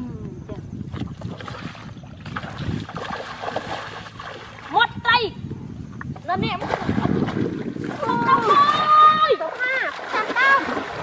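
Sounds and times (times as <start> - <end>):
wind rumbling on microphone: 0.0 - 11.0
water splashing: 0.9 - 5.0, 6.4 - 11.0.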